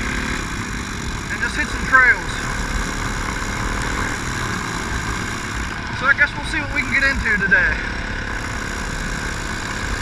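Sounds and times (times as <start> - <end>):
dirt bike engine cruising: 0.0 - 10.0.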